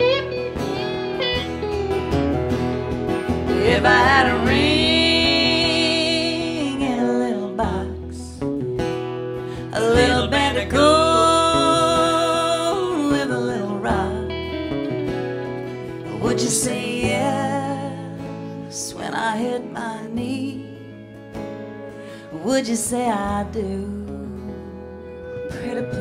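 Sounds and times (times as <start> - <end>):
acoustic guitars strumming: 0.0 - 26.0
electric slide guitar: 0.0 - 26.0.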